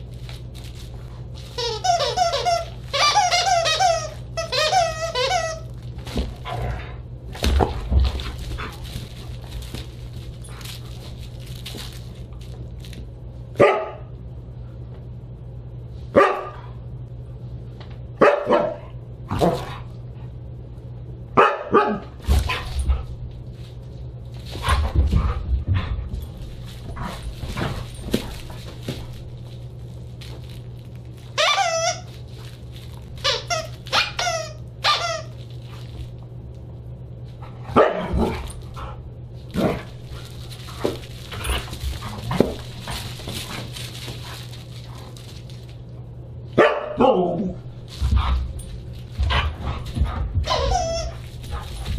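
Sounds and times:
steady low hum: 0:00.0 - 0:51.9
dog barking: 0:13.6 - 0:14.1, 0:16.1 - 0:16.6, 0:18.2 - 0:19.0, 0:21.4 - 0:22.2, 0:37.7 - 0:38.2, 0:46.6 - 0:47.4.

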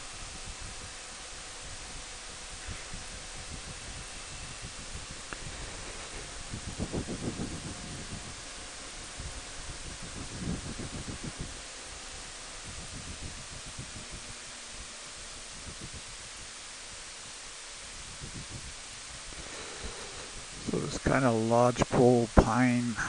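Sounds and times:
low wind buffeting surges: 0:00.0 - 0:23.0
wind noise on microphone: 0:00.0 - 0:23.0.

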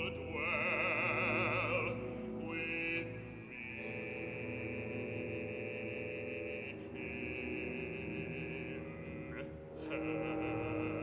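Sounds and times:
orchestra holding sustained chords: 0:00.0 - 0:11.0.

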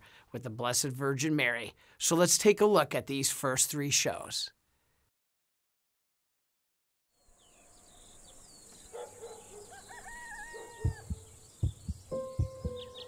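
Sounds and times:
bird chirps: 0:07.1 - 0:13.0
deep heartbeat-like thuds: 0:10.8 - 0:13.0.

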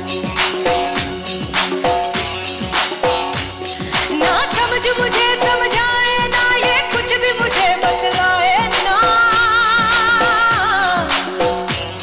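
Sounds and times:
band playing steady beat: 0:00.0 - 0:12.0
woman singing: 0:03.8 - 0:12.0.

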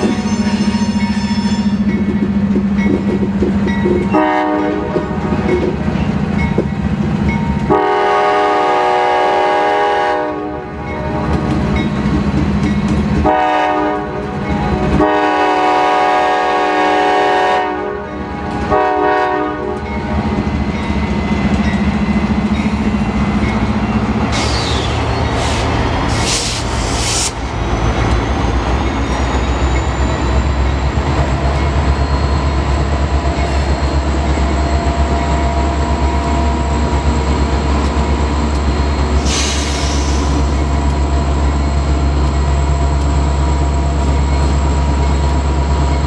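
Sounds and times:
locomotive air horn blasts: 0:04.1 - 0:05.3, 0:07.7 - 0:11.5, 0:13.2 - 0:19.8
locomotive engine drone: 0:19.6 - 0:46.0.

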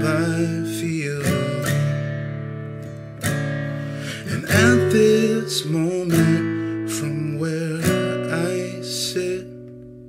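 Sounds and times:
fingerpicked acoustic guitar chords: 0:00.0 - 0:10.0.

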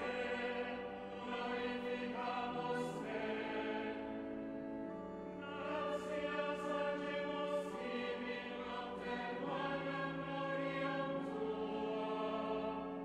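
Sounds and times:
choir singing sustained chords: 0:00.0 - 0:13.0.

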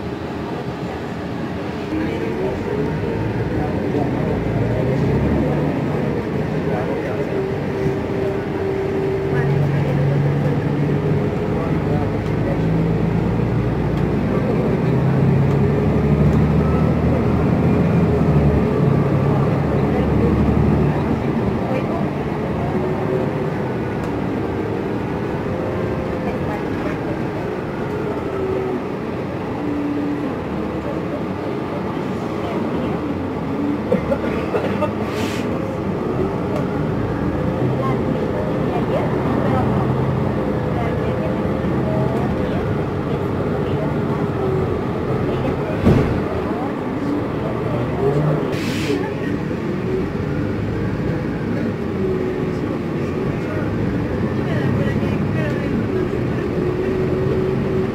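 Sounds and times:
bus engine whine: 0:00.0 - 0:57.9
road noise: 0:00.0 - 0:57.9.

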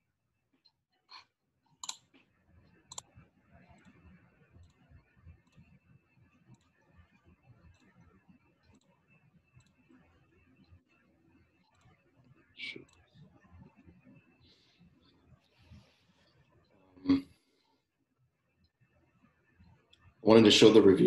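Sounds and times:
computer mouse clicks: 0:01.8 - 0:02.2, 0:02.9 - 0:05.8, 0:06.5 - 0:09.0, 0:09.6 - 0:10.0, 0:11.6 - 0:14.0.

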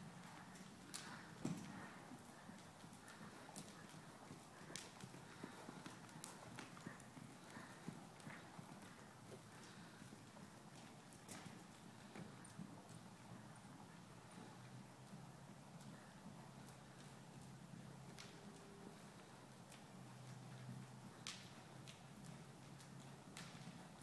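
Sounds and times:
hoofbeats on soft dirt: 0:00.0 - 0:24.0.

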